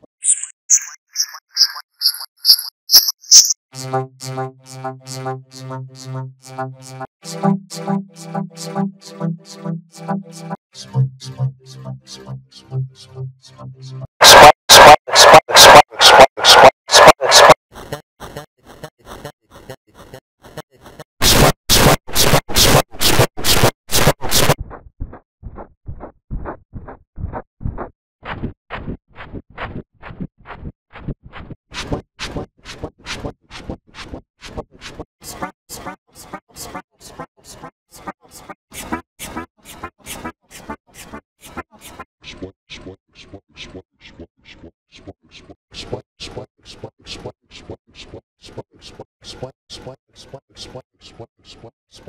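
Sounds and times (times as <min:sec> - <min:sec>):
looped stuttering voice sample: 0:00.0 - 0:24.6.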